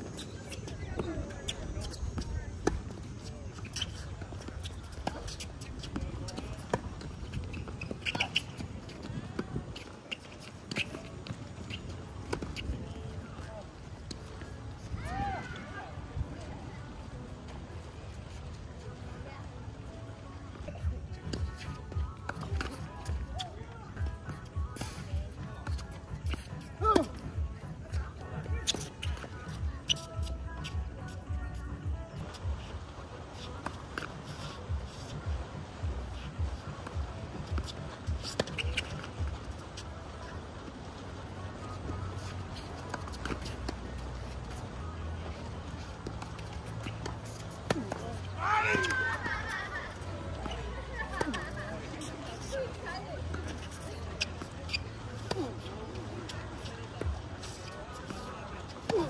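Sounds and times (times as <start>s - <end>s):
footsteps on hard court: 20.7s - 32.8s, 33.4s - 39.9s.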